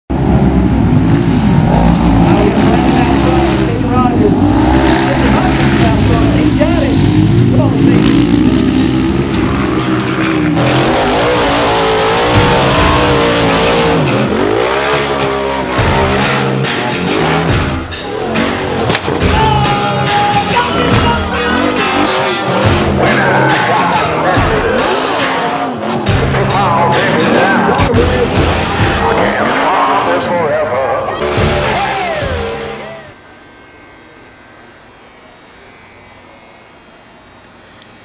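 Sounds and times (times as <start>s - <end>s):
buggy engines revving: 0.1s - 33.2s
voices: 2.2s - 33.2s.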